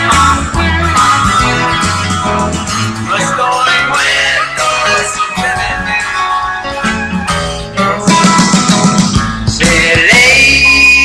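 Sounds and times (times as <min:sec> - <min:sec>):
rock band music: 0:00.0 - 0:11.0.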